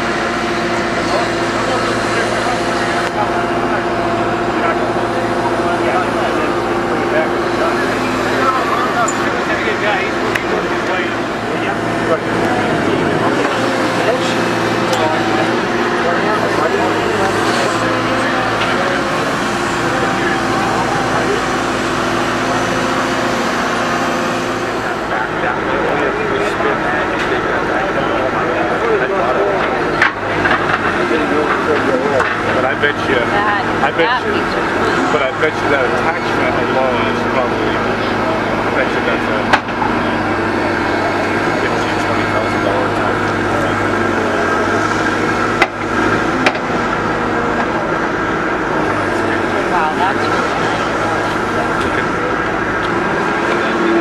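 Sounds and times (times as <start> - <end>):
crowd chatter: 0.0 - 54.0
excavator diesel engine running: 0.0 - 54.0
hydraulics working: 0.0 - 54.0.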